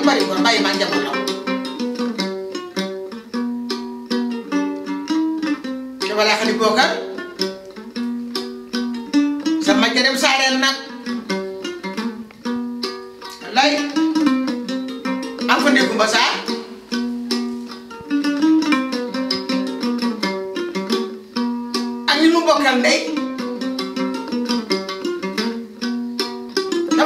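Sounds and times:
plucked string instrument music: 0.0 - 27.0
woman speaking: 15.5 - 16.8.

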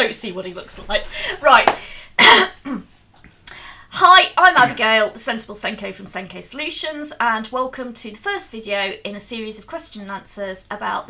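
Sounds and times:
person clearing throat: 2.2 - 2.9.

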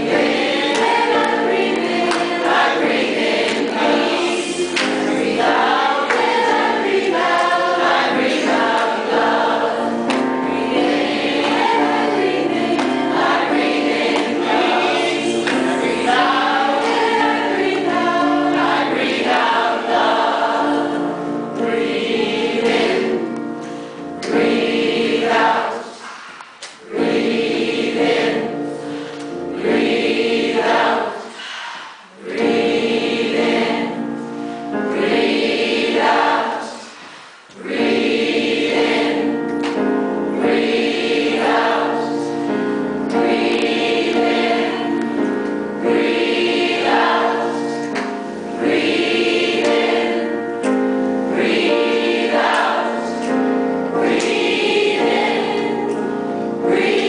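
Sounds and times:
mixed choir singing a cappella: 0.0 - 57.0.

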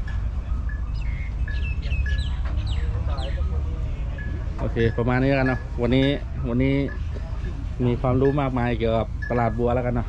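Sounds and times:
birds chirping: 0.0 - 10.0
whistled notes: 0.4 - 5.7.

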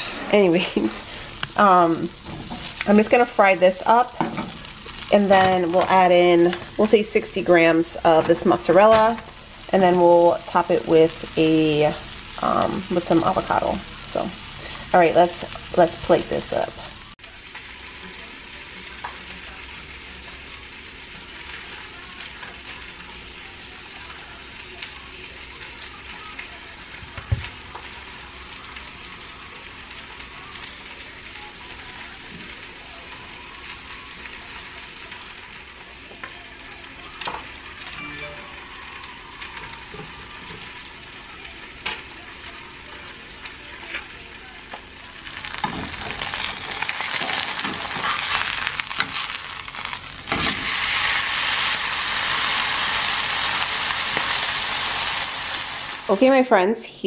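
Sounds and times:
food sizzling in a pan: 0.0 - 56.7.

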